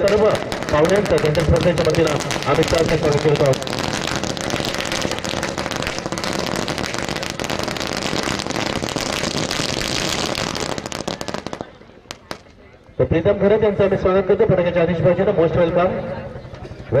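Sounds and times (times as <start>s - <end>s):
sharp pops: 0.0s - 12.6s
firecrackers crackling: 0.0s - 13.1s.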